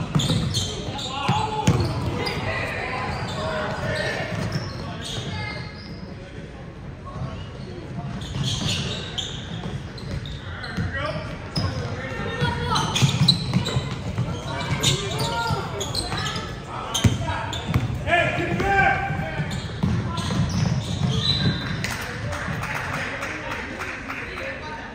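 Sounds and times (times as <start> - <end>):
people calling and shouting: 0.0 - 23.2
basketball bouncing on wooden floor: 17.0 - 21.6.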